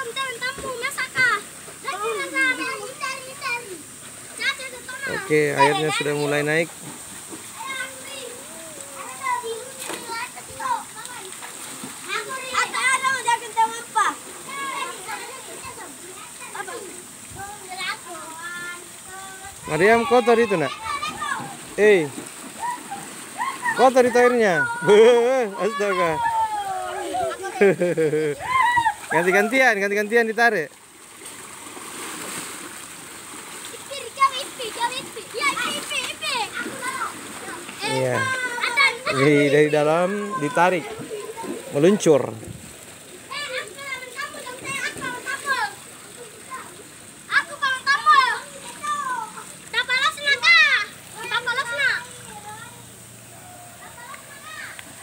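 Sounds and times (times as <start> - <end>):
children shouting and calling: 0.0 - 29.8, 33.6 - 42.2, 43.0 - 55.0.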